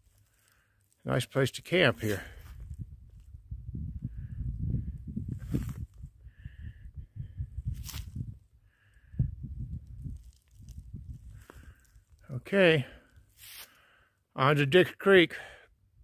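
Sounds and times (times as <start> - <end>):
wind rumble: 2.5 - 12.2.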